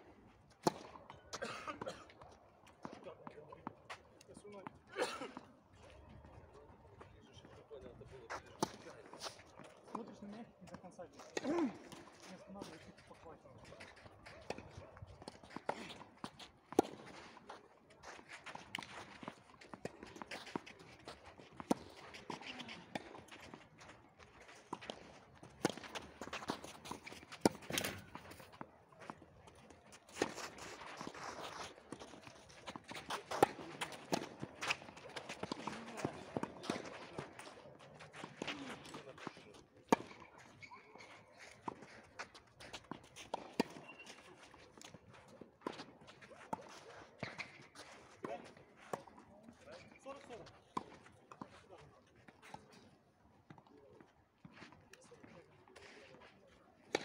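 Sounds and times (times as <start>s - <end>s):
tennis balls bouncing on clay: 0.5s - 4.8s, 7.0s - 51.6s
tennis balls hit by rackets: 0.6s - 1.3s, 24.7s - 40.5s.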